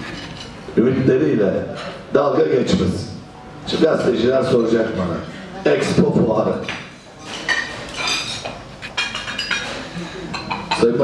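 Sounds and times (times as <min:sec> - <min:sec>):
dishes and cutlery clinking: 0:00.0 - 0:00.6, 0:06.7 - 0:11.0
murmur of voices: 0:00.0 - 0:11.0.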